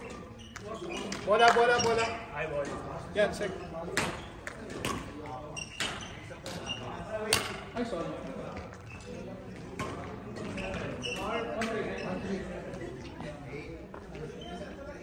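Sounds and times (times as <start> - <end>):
court shoes squeaking: 0.0 - 15.0.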